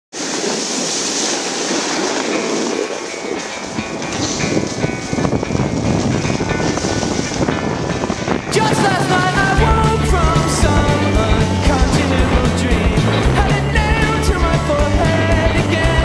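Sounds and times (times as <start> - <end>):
snowboard scraping over snow: 0.1 - 16.0
wind buffeting microphone: 0.1 - 16.0.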